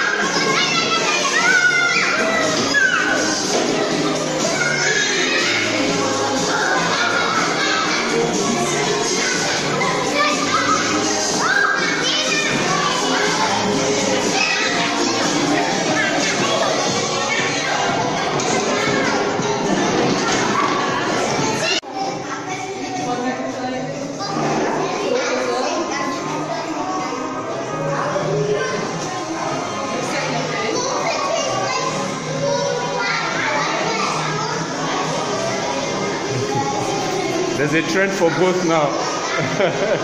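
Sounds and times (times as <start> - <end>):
children chattering and calling out: 0.0 - 40.0
music playing: 0.0 - 40.0.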